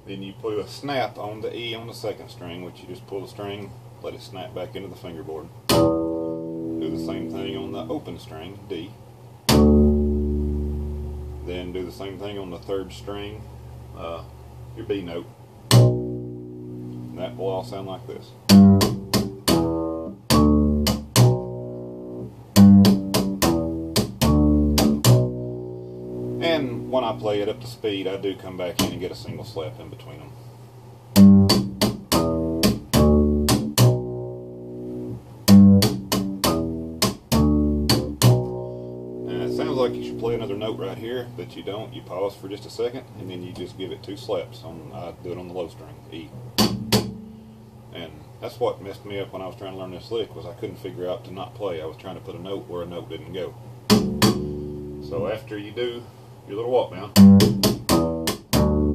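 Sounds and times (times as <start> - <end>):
bass string snapping on fingerboard: 5.7 - 6.5, 9.5 - 11.1, 15.7 - 17.1, 18.5 - 26.9, 31.2 - 40.4, 46.6 - 47.4, 53.9 - 55.1, 57.1 - 58.9
low bass note ringing: 18.5 - 27.6, 31.2 - 41.5, 46.6 - 47.8, 53.9 - 55.3.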